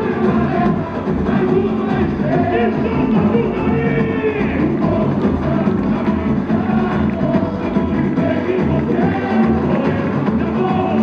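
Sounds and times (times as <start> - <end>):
samba drums and percussion: 0.0 - 11.0.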